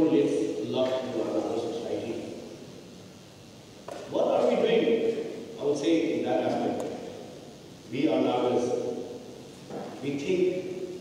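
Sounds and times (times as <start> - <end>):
man's amplified speech: 0.0 - 2.4, 4.0 - 7.2, 7.9 - 9.1, 9.9 - 10.9
low room hum: 0.0 - 11.0.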